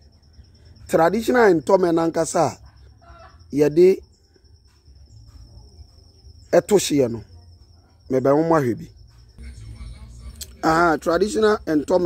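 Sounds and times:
cricket trilling: 0.0s - 12.0s.

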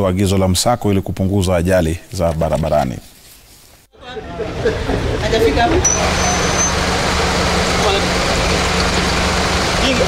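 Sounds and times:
people talking: 4.0s - 6.7s, 7.8s - 8.4s, 9.8s - 10.0s
traffic noise: 4.0s - 10.0s
vehicle engines running: 4.1s - 10.0s
high thin tone: 5.8s - 6.9s.

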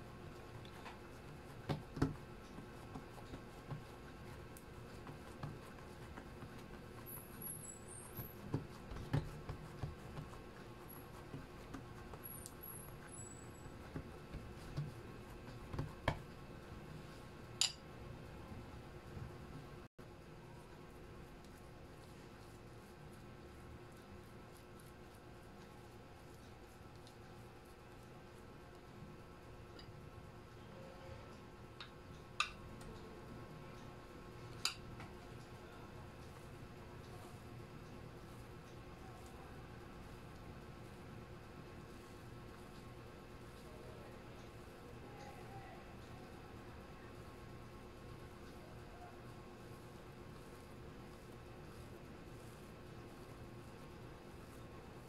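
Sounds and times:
hands patting dough: 0.0s - 30.2s, 33.8s - 55.0s
low room noise: 0.0s - 55.0s.

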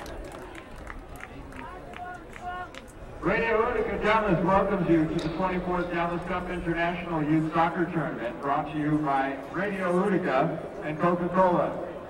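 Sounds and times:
stadium background: 0.0s - 12.0s.

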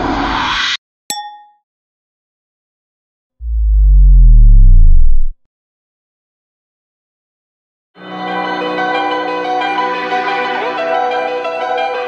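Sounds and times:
synthesized bass riser: 3.4s - 5.4s.

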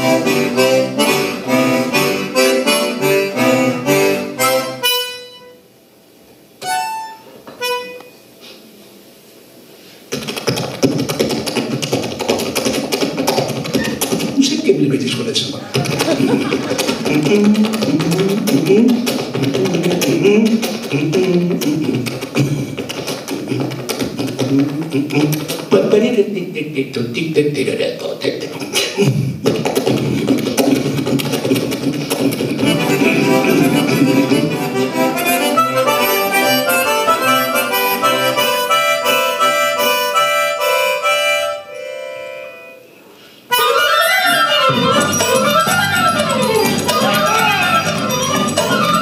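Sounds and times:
accordion chords: 0.0s - 5.7s, 6.6s - 8.3s, 10.1s - 27.6s, 29.0s - 49.0s.

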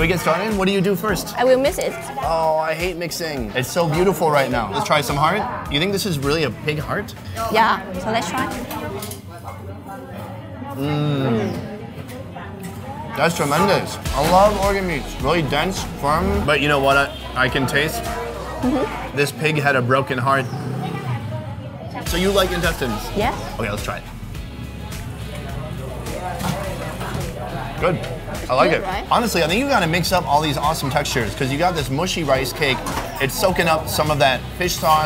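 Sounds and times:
background music: 0.0s - 9.2s, 13.0s - 20.0s, 22.0s - 35.0s
faint diners' voices: 0.0s - 35.0s.

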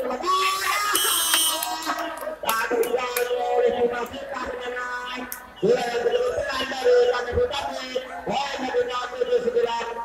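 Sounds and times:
crowd shouting and cheering: 0.0s - 10.0s
music over loudspeakers: 0.0s - 10.0s.

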